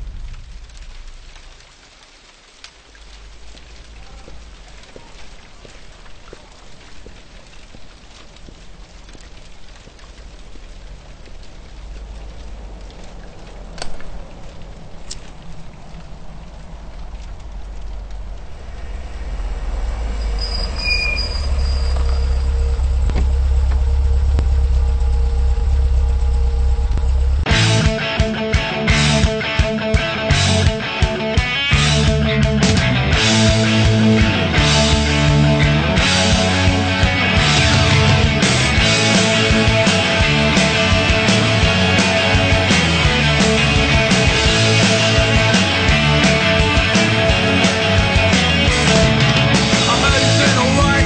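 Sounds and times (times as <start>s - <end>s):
deep boom: 0.0s - 1.6s, 17.9s - 28.0s, 31.8s - 51.0s
small crackles and clicks: 0.0s - 19.2s
low rumble: 0.0s - 28.0s, 31.7s - 51.0s
rain-like hiss: 0.0s - 51.0s
sharp clicks: 11.1s - 15.4s.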